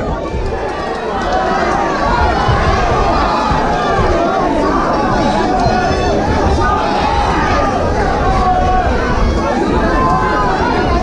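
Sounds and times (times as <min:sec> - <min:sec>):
crowd shouting and yelling: 0:00.0 - 0:11.0.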